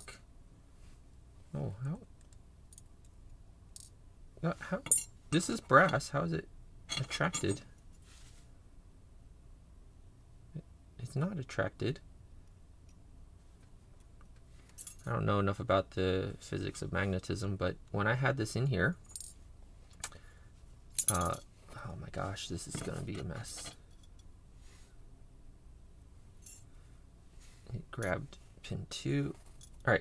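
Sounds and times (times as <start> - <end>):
low room hum: 0.0 - 30.0.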